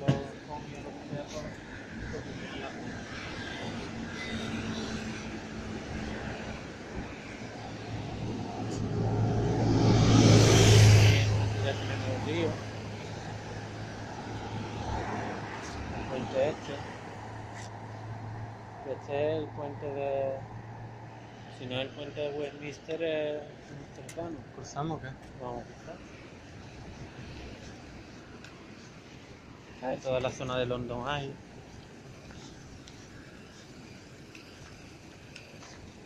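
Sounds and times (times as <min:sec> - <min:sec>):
city road traffic: 0:00.0 - 0:36.0
large vehicle passing close: 0:08.0 - 0:13.4.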